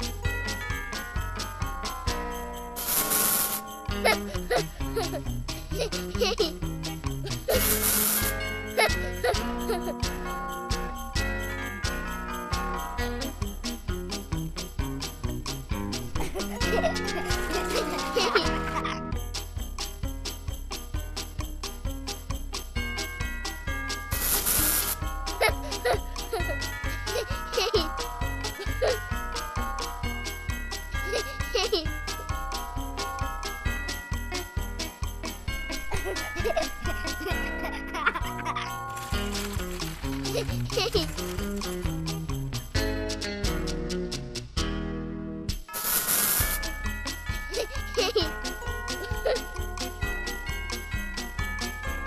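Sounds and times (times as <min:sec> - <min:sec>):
jingling children's music: 0:00.0 - 0:44.5, 0:45.5 - 0:52.0
spray bottle hiss: 0:02.8 - 0:03.7, 0:07.5 - 0:08.3, 0:24.1 - 0:25.0, 0:45.7 - 0:46.6.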